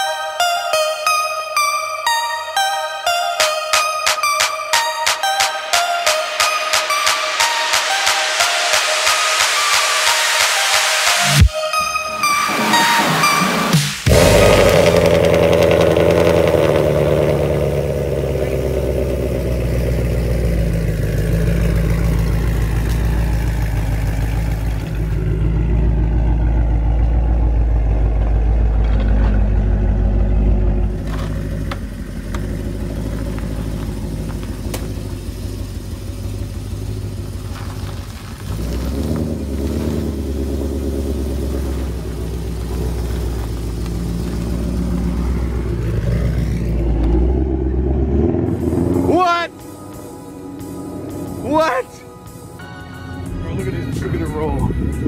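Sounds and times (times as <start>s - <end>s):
car engine idling: 12.2s - 55.0s.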